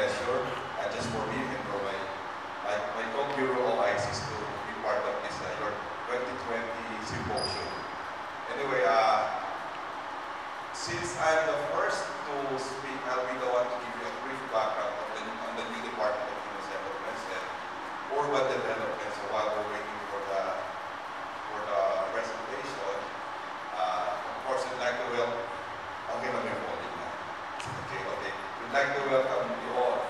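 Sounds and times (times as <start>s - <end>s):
man speaking over pa system: 0.0s - 7.8s
man speaking into microphone: 0.0s - 9.6s, 10.8s - 20.8s, 21.5s - 30.0s.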